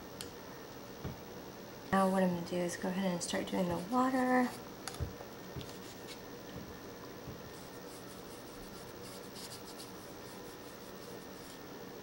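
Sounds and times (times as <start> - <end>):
paintbrush stroking on paper: 7.6 - 11.6.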